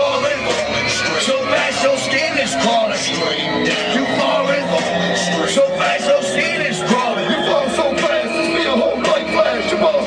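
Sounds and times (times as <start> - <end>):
hip-hop music: 0.0 - 10.0.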